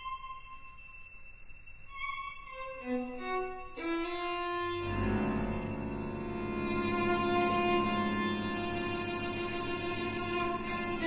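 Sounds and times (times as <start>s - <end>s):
string ensemble playing: 1.9s - 11.0s.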